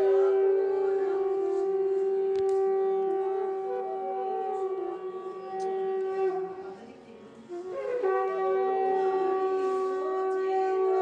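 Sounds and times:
conch shell blown: 0.0s - 11.0s.

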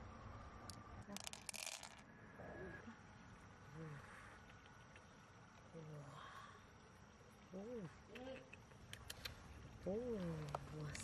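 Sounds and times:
beads clattering onto beads: 0.7s - 2.1s.

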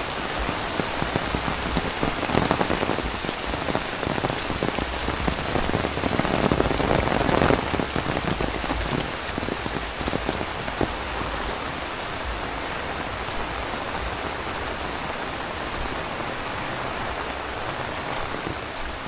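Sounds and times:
heavy rain on an umbrella: 0.0s - 19.0s.

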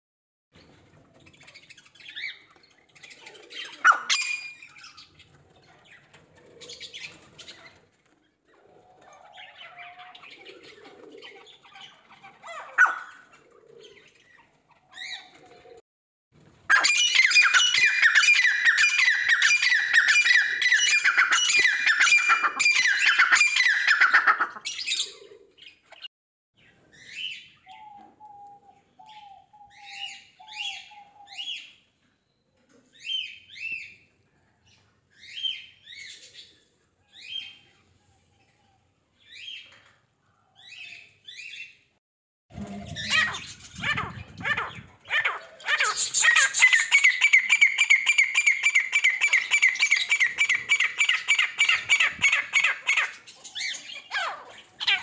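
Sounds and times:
small birds chirping and squawking: 0.6s - 15.8s, 16.6s - 32.0s, 32.6s - 55.0s.

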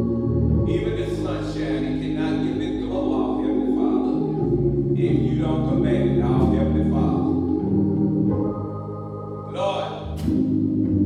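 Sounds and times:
voices singing a hymn: 0.0s - 10.1s
organ chord: 0.0s - 11.0s.

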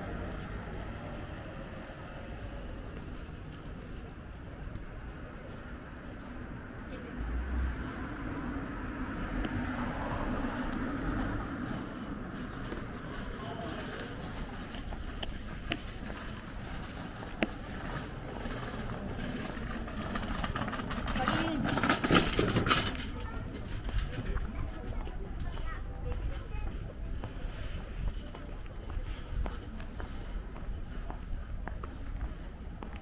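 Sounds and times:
passers-by talking: 0.0s - 33.0s
traffic running nearby: 0.0s - 33.0s.

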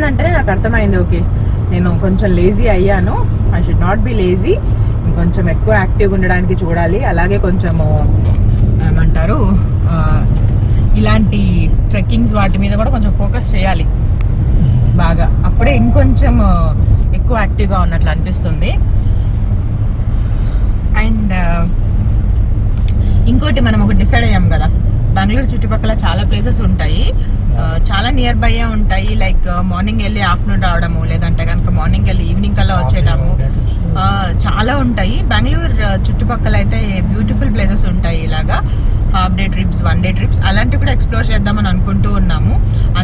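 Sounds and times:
car driving rumble: 0.0s - 43.0s
conversation: 0.0s - 43.0s.

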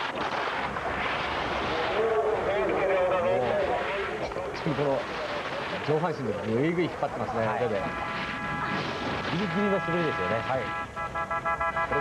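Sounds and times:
rush of noise: 0.0s - 11.0s.

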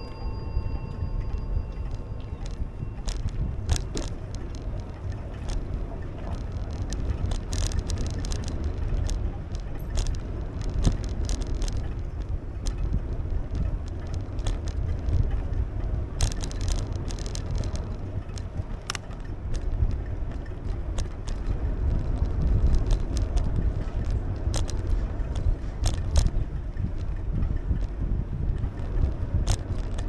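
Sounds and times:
bike rattling over pavement joints: 0.0s - 30.0s
tyre and wind rumble: 0.0s - 30.0s.

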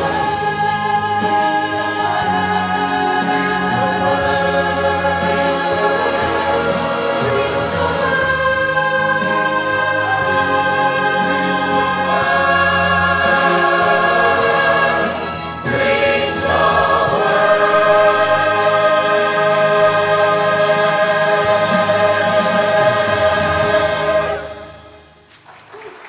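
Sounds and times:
choir singing in harmony: 0.0s - 25.3s.

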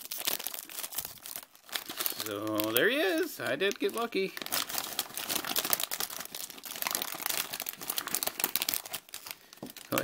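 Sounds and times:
foil wrapper crinkling: 0.0s - 10.0s.

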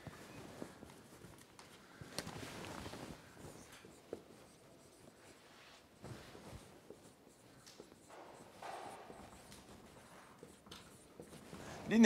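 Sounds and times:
marker writing on whiteboard: 3.2s - 12.0s.

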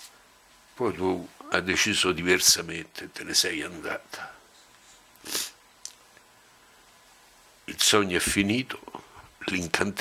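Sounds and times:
sharp intake of breath: 5.2s - 5.6s.

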